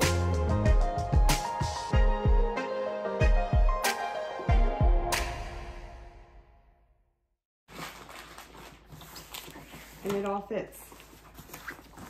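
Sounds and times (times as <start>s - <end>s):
fabric lunch bag rustling: 7.7s - 12.0s.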